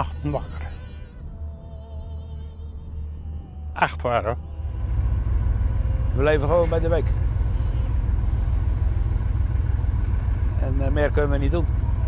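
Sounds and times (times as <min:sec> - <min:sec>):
boat engine rumbling: 0:00.0 - 0:12.0.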